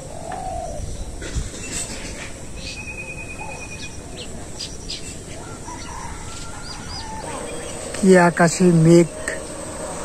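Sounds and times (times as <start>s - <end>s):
small birds chirping: 0.0s - 9.6s
steady background hiss: 0.0s - 10.0s
distant chickens clucking: 3.5s - 8.0s.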